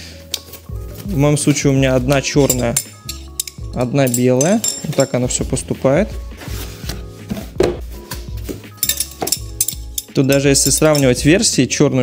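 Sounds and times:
background music: 0.0 - 12.0
metal tubes clinking: 0.2 - 5.6, 8.4 - 11.5.

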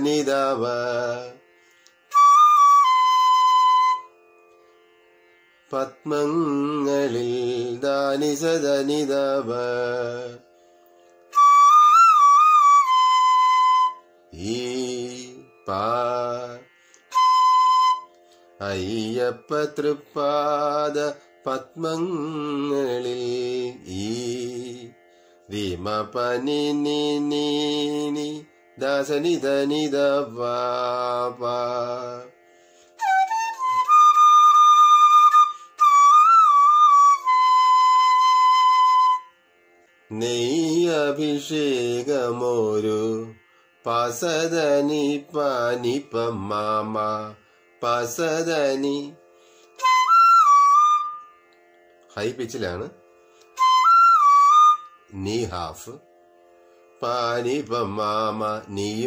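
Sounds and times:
man singing syllables: 0.0 - 1.4, 5.7 - 10.5, 13.8 - 32.4, 40.1 - 49.2, 52.1 - 53.0, 55.1 - 56.0, 57.0 - 59.0
bamboo flute note: 17.1 - 18.1.

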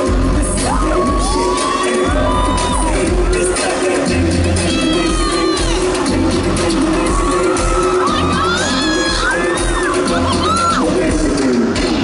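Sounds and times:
crowd screaming and cheering: 0.0 - 12.0
loud pop dance track: 0.0 - 12.0.

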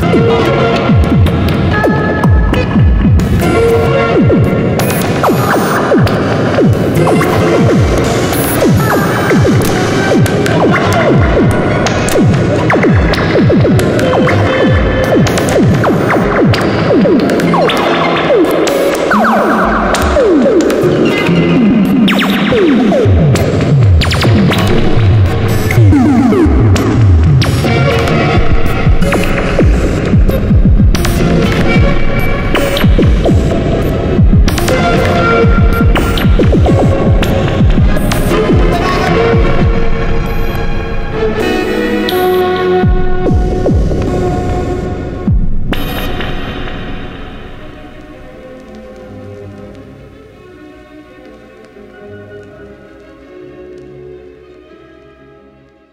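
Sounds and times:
steady electronic drone: 0.0 - 53.5.

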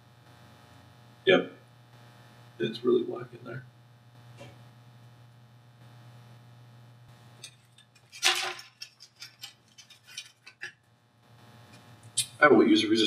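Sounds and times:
faint low hum: 0.0 - 13.0.

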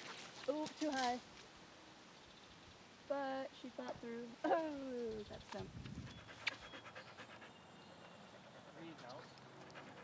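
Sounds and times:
dog panting: 6.0 - 10.0.

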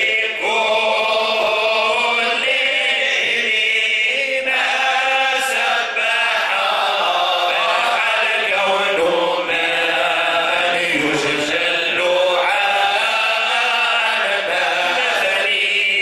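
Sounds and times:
men chanting devotional praise: 0.0 - 16.0.

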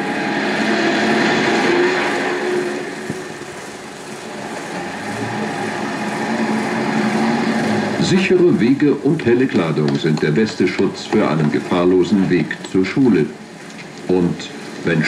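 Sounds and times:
steady low hum: 0.0 - 15.0
vehicles passing: 0.0 - 15.0.

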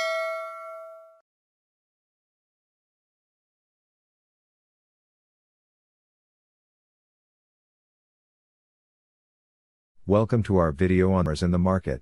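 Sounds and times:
notification bell ding: 0.0 - 1.2.

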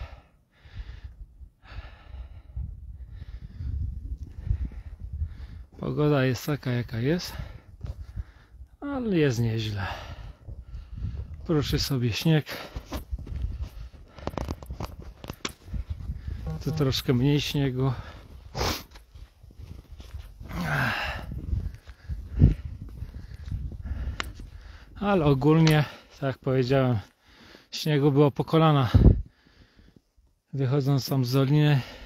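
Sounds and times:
man breathing hard: 0.0 - 5.8, 7.3 - 8.8, 9.7 - 11.4, 12.5 - 16.6, 17.9 - 19.3, 20.2 - 25.0, 27.1 - 27.7, 29.0 - 30.2, 31.8 - 32.0
footsteps crunching in snow: 12.6 - 23.5.

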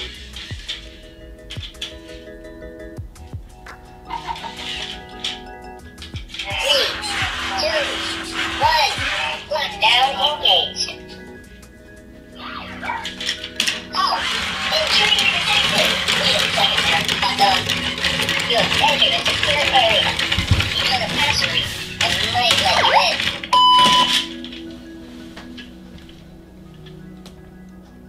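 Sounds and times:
short steady beep: 23.5 - 24.3.

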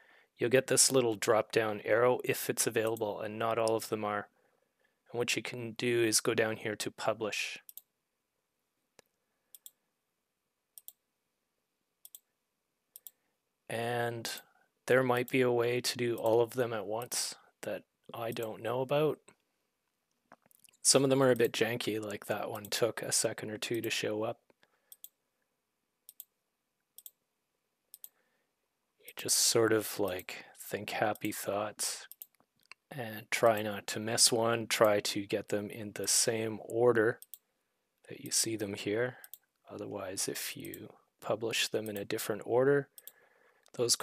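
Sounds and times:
computer mouse clicks: 9.0 - 9.8, 10.8 - 11.0, 12.0 - 12.3, 12.9 - 13.2, 24.6 - 25.2, 26.1 - 26.3, 27.0 - 27.2, 27.9 - 28.2, 32.1 - 32.8, 37.2 - 37.4.

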